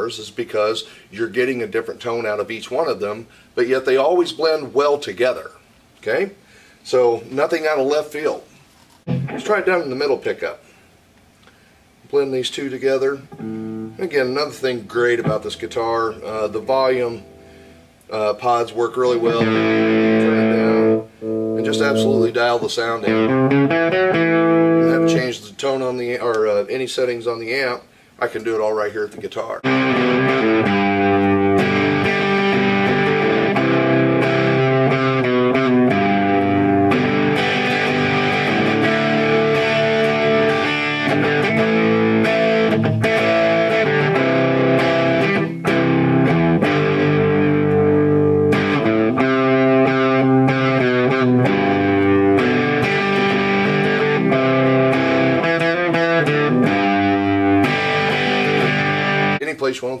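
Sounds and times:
electric guitar chords and notes: 9.0s - 9.6s, 13.2s - 18.1s, 19.0s - 25.3s, 29.6s - 59.4s.

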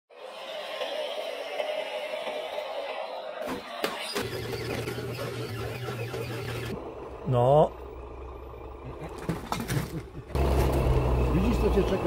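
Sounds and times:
electric motor and gears whining: 0.1s - 7.2s, 10.4s - 12.0s.

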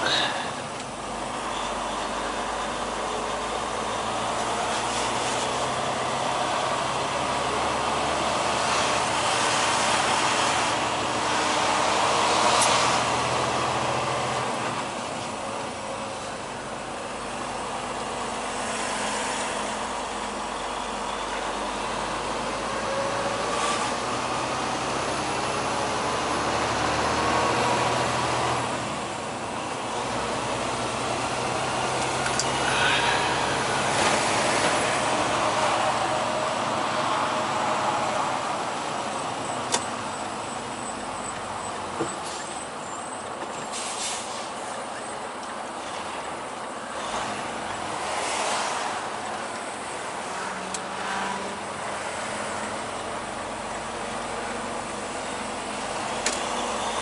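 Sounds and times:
road noise: 0.0s - 57.0s
truck diesel engine: 0.0s - 57.0s.

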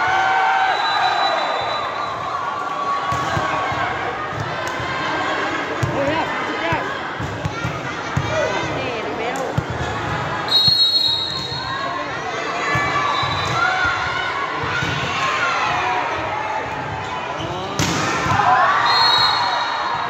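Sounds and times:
players and spectators shouting: 0.0s - 20.0s
referee's whistle: 0.6s - 2.3s, 10.5s - 11.9s, 13.0s - 13.7s, 18.8s - 20.0s
volleyball bouncing: 5.8s - 11.6s.

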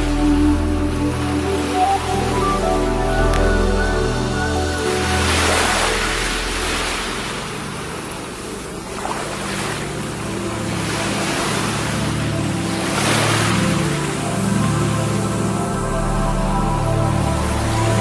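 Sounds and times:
ocean waves washing: 0.0s - 18.0s
slow ambient music: 0.0s - 18.0s.

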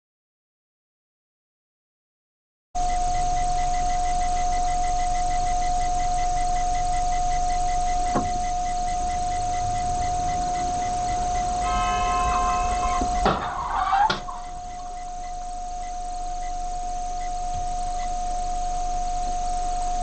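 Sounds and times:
faint fast ticking: 3.2s - 20.0s
loud high-pitched tone: 7.2s - 16.1s.

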